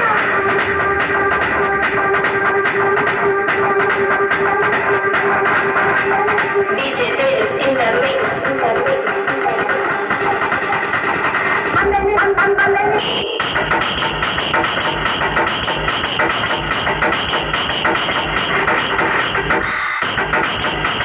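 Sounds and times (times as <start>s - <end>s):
electronic dance track: 0.0s - 21.0s.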